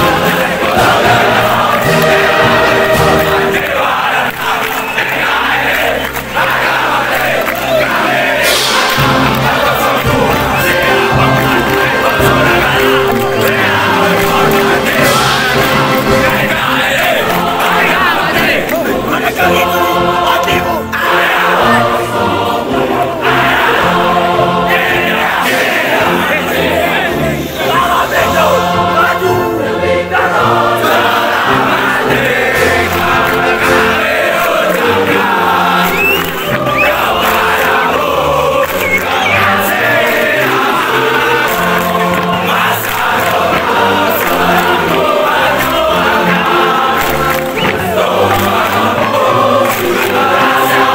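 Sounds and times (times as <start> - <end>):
choir singing: 0.0 - 50.9.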